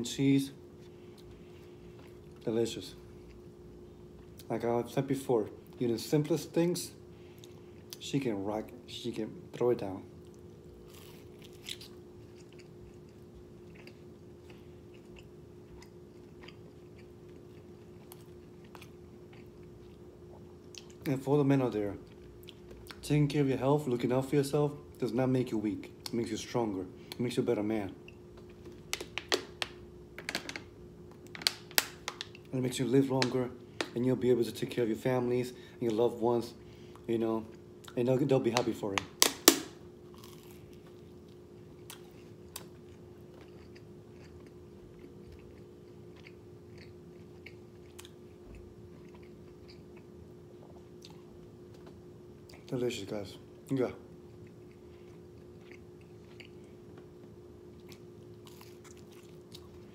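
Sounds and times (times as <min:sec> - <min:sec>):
soft chewing: 0:00.7 - 0:04.5, 0:10.2 - 0:21.1, 0:40.1 - 0:52.7, 0:54.1 - 0:59.9.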